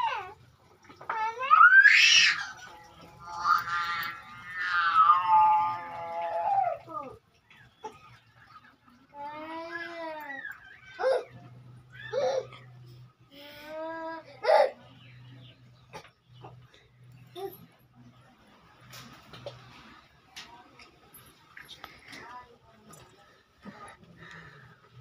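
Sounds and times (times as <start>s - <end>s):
child wailing: 1.0s - 7.2s.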